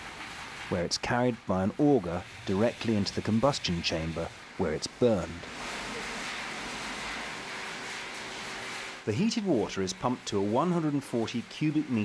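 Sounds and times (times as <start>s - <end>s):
straw burning in boiler: 0.0s - 12.0s.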